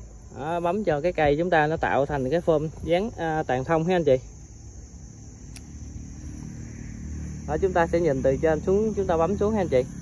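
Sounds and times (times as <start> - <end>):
motor vehicle passing: 4.8 - 10.0.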